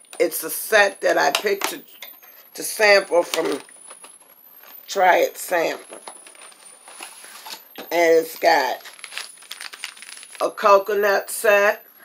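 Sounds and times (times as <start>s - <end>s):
woman speaking: 0.2s - 2.0s, 2.6s - 3.7s, 4.9s - 6.0s, 7.9s - 8.9s, 10.4s - 11.8s.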